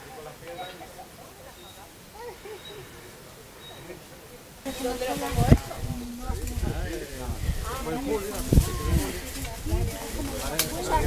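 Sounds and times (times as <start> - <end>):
group of people talking: 0.0 - 11.0.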